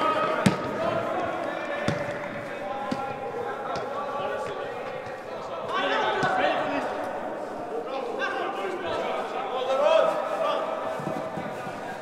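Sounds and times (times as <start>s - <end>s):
distant shouts echoing: 0.0s - 12.0s
football being kicked: 0.4s - 5.1s.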